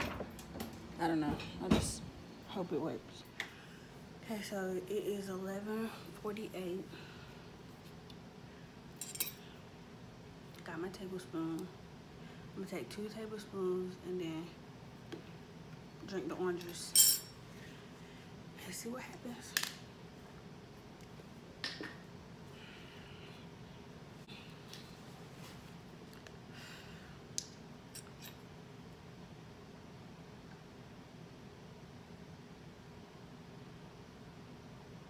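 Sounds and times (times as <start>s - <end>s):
soft breath: 22.4s - 23.6s.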